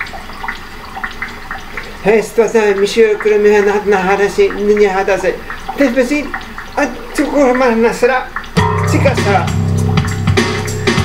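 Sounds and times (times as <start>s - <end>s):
water drops plinking: 0.0s - 11.0s.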